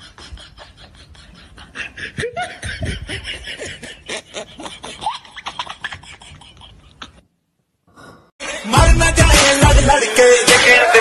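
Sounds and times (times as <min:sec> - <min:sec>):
person laughing: 0:00.0 - 0:07.2.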